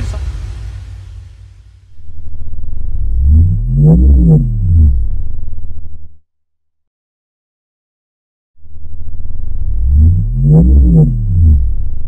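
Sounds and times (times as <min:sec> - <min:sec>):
synthesizer pitch sweeps: 0:02.0 - 0:05.5, 0:08.6 - 0:12.0
pulsing synthesizer music: 0:03.1 - 0:05.3, 0:09.6 - 0:11.9.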